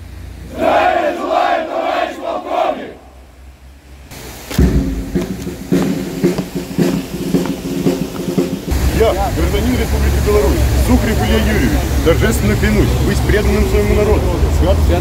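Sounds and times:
low outdoor rumble: 0.0 - 15.0
soldiers shouting in unison: 0.5 - 3.2.

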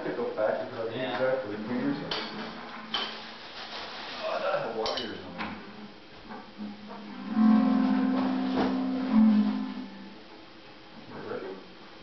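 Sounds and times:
electric guitar low note: 7.0 - 10.2.

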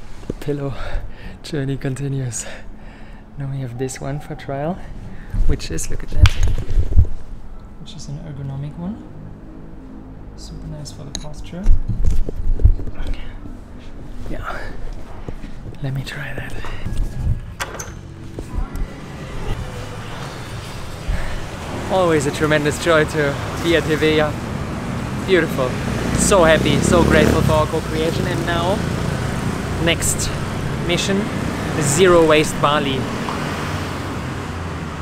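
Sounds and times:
road traffic noise: 0.0 - 35.0.

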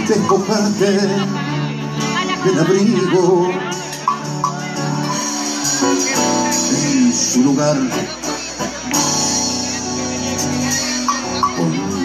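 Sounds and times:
guitars holding chords: 0.0 - 12.0.

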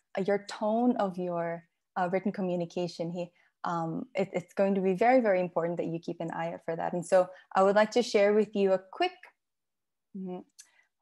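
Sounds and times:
woman speaking: 0.0 - 9.3.

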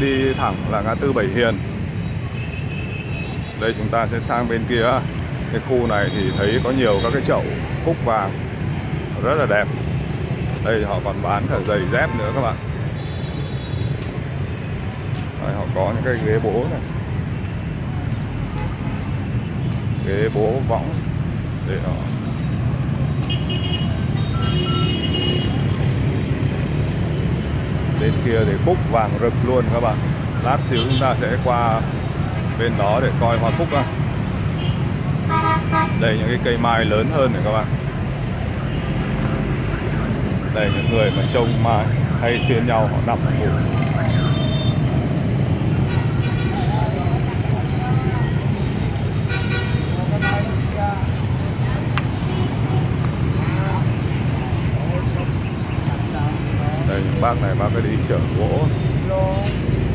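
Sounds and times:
busy street traffic hum: 0.0 - 59.9
motorbike engines rumbling: 0.0 - 59.9
faint voices: 46.4 - 59.9.

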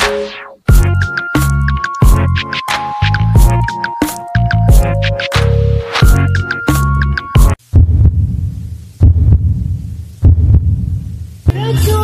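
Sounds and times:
deep booming hits: 7.4 - 11.0.

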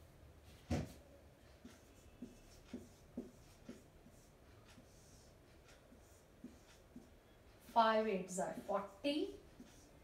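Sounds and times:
marker pen writing on whiteboard: 0.6 - 10.0.

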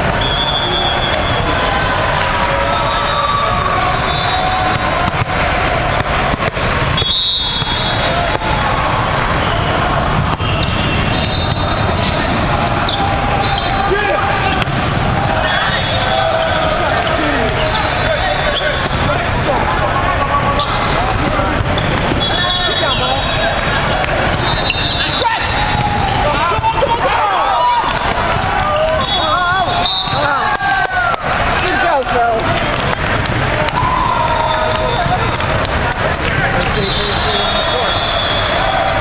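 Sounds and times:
many overlapping voices: 0.0 - 39.0
referee whistles: 0.1 - 1.6, 2.6 - 4.8, 7.0 - 8.2, 10.4 - 14.6, 21.8 - 23.6, 24.3 - 26.4, 28.8 - 30.6, 36.6 - 39.0
volleyballs being hit: 4.6 - 24.8, 25.4 - 33.8, 34.4 - 36.8.

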